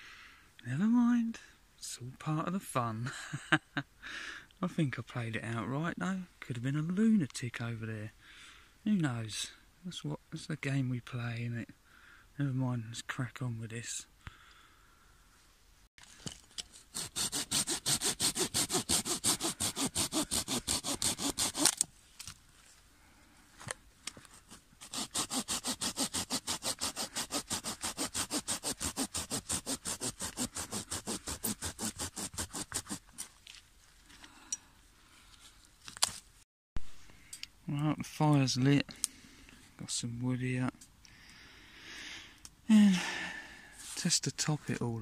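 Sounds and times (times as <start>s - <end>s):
hand saw cutting a log: 16.6s - 21.8s, 24.3s - 33.2s.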